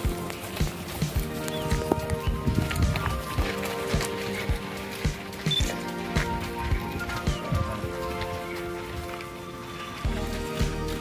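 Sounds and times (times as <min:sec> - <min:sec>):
band music with drum beats: 0:00.0 - 0:08.4, 0:10.0 - 0:11.0.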